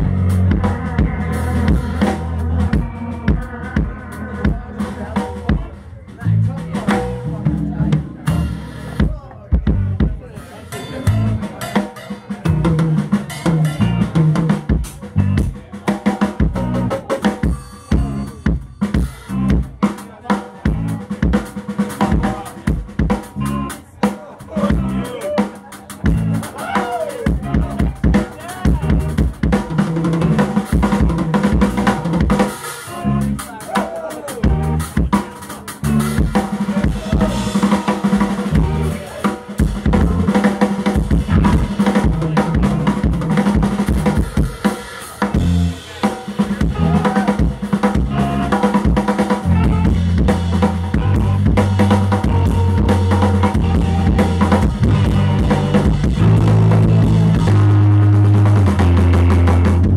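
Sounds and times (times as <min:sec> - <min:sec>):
electric guitar: 0:00.0 - 0:20.0, 0:20.6 - 0:59.9
bass guitar: 0:00.0 - 0:59.9
drum kit: 0:00.0 - 0:59.9.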